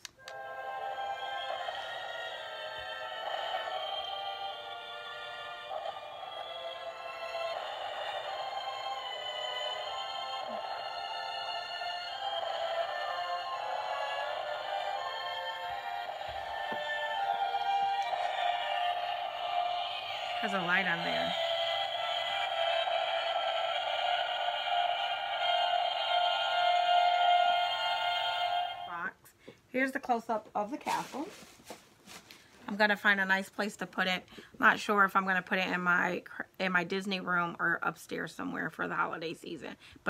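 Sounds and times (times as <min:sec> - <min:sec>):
thin music from toy speaker: 0:00.0 - 0:29.2.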